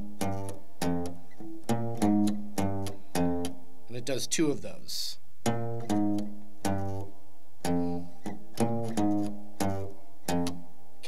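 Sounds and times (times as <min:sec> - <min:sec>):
electric guitar chords ringing: 0:00.0 - 0:03.6.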